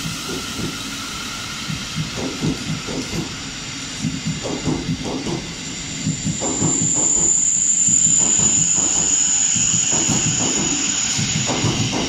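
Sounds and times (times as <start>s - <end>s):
high steady whine: 0.0s - 12.0s
train wheels rumbling and clattering: 0.0s - 12.0s.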